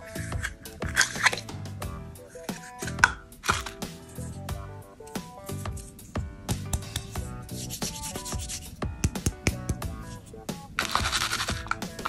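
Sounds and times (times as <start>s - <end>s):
hands rubbing candy tape roll: 0.0s - 1.5s, 6.8s - 12.0s
background music: 0.0s - 12.0s.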